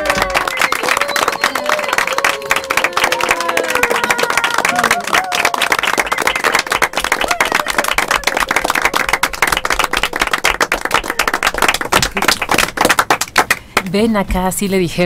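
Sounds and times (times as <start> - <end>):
people applauding: 0.0 - 13.9.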